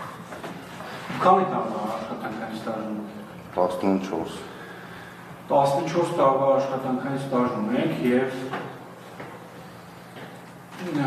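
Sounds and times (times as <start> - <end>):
man talking: 1.1 - 4.6.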